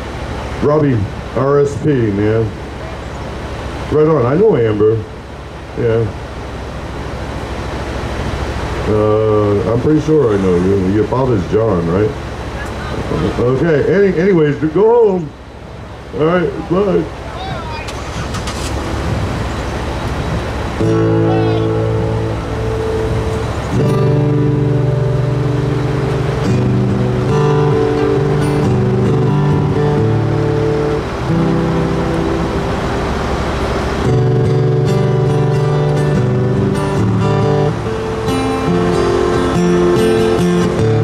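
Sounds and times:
vehicle noise: 0:00.0 - 0:41.0
acoustic guitar chords: 0:16.1 - 0:41.0.

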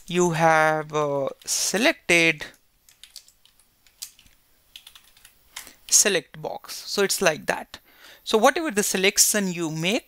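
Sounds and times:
computer keyboard keystrokes: 0:02.8 - 0:06.0.

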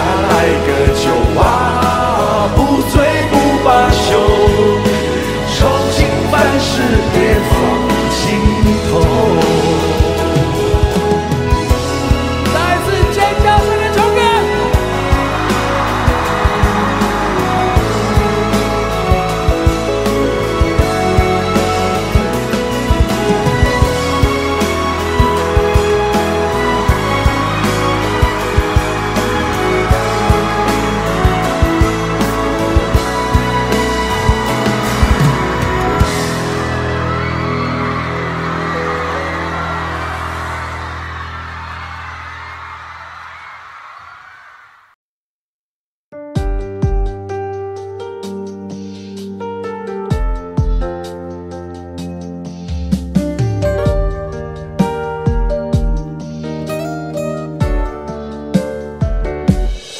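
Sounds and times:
steady drum beat: 0:00.0 - 0:39.4, 0:52.1 - 0:56.6
instrumental pop music: 0:00.0 - 0:43.7, 0:46.1 - 0:59.9.

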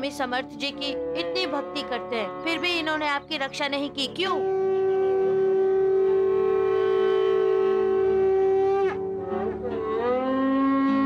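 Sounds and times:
long horn-like wind instrument note: 0:00.9 - 0:02.6, 0:04.2 - 0:11.0.

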